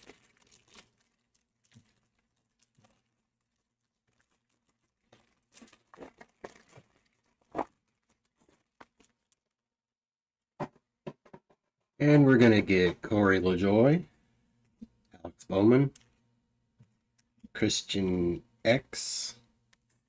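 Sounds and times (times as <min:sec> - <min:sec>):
foil wrapper crinkling: 0:00.0 - 0:09.6.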